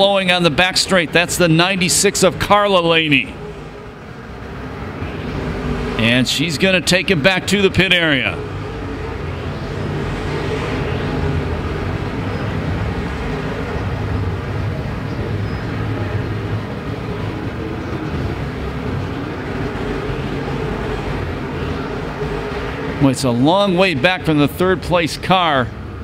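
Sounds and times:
race car engines droning: 0:00.0 - 0:26.0.

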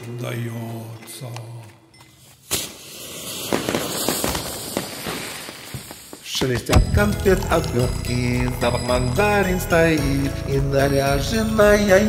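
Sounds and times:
sharp pop: 0:05.7 - 0:07.9.

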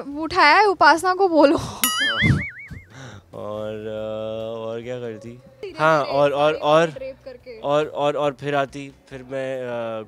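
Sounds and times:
cartoon boing sound effect: 0:01.8 - 0:02.9.

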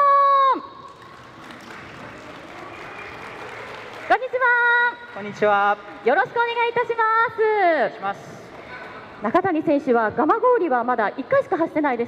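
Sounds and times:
audience applauding: 0:00.8 - 0:06.2.

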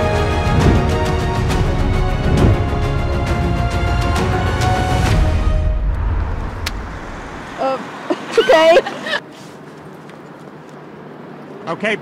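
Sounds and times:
car going by: 0:05.3 - 0:09.6.

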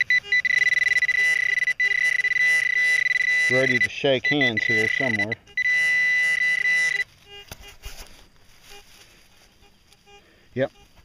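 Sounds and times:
buzzing alarm tone: 0:00.0 - 0:07.8
faint short beeps: 0:00.0 - 0:07.8.

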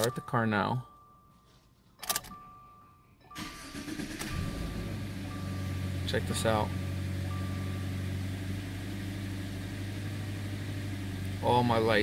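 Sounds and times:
engine starter cranking: 0:03.4 - 0:04.9
car engine idling: 0:03.4 - 0:12.0.

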